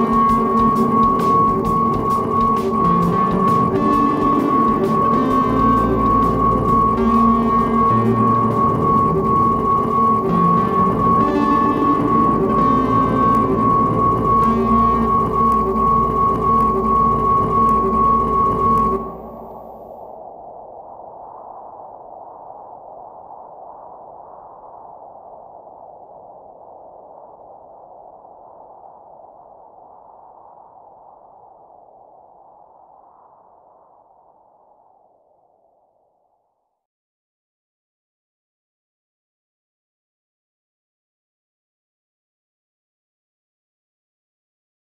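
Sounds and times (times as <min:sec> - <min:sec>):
new-age music with drums: 0:00.0 - 0:08.1
high sustained tone: 0:00.0 - 0:20.1
soft airy drone: 0:00.0 - 0:22.6.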